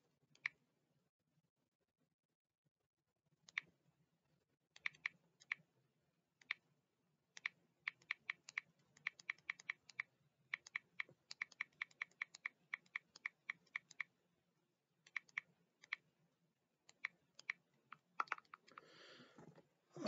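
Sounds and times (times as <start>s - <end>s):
faint keyboard typing: 4.8s - 5.7s, 7.4s - 14.1s, 15.0s - 16.1s, 16.9s - 19.6s.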